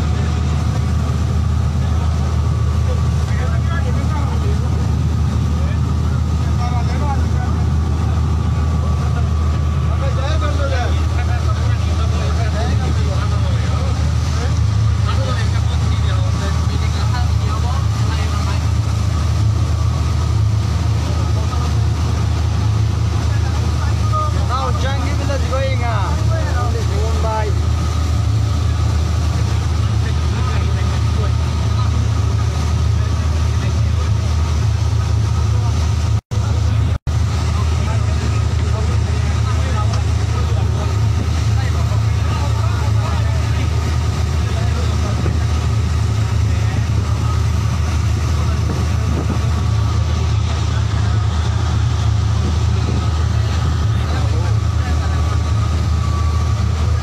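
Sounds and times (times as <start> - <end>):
motorboat engine droning: 0.0 - 57.0.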